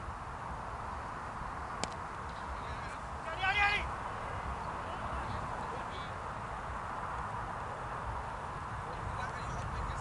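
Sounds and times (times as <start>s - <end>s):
steady outdoor hiss: 0.0s - 10.0s.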